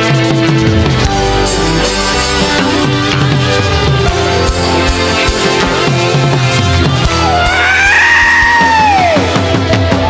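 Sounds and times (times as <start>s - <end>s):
bass guitar: 0.0s - 10.0s
drums: 0.0s - 10.0s
electric guitar solo: 1.2s - 10.0s.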